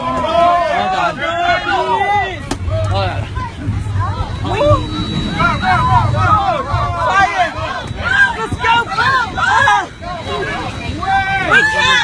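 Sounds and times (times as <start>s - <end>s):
passengers talking and calling out: 0.0s - 12.0s
steady low rumble: 1.7s - 11.4s.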